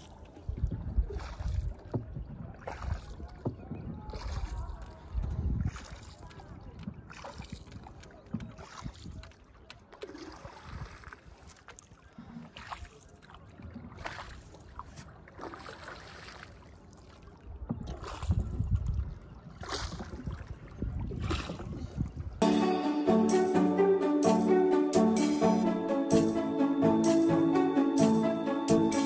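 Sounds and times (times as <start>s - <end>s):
paddle strokes splashing water: 0.0s - 22.4s.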